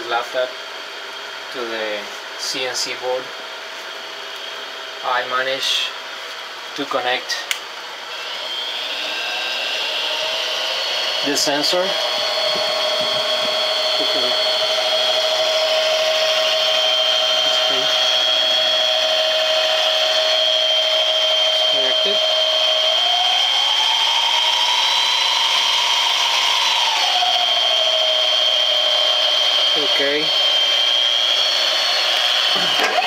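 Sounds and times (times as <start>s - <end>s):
lathe motor whine: 0.0s - 33.0s.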